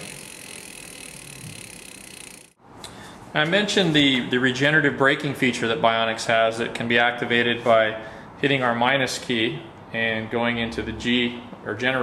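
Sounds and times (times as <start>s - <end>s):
electric hub motor running: 0.0s - 2.6s.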